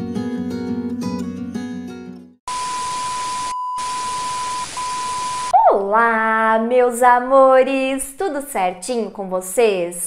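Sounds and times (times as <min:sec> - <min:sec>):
static hiss: 0:02.5 - 0:05.5
steady beep tone: 0:02.5 - 0:05.5
woman speaking: 0:05.6 - 0:10.0.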